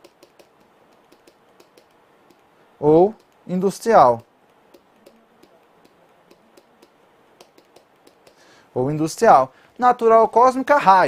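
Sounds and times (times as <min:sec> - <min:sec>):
stylus tapping on pen tablet: 0:00.0 - 0:02.5, 0:03.1 - 0:08.5.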